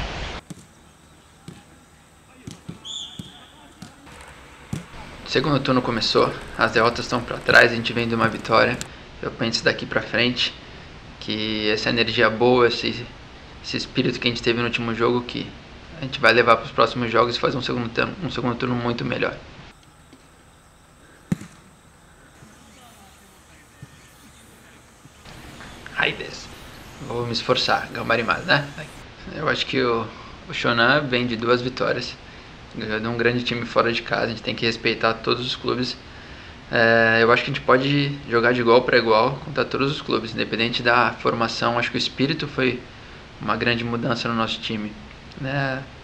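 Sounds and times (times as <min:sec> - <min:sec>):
high chirp: 0:00.4 - 0:08.9, 0:19.8 - 0:29.1
footballs being kicked: 0:01.4 - 0:01.7, 0:02.4 - 0:05.0, 0:21.3 - 0:21.6.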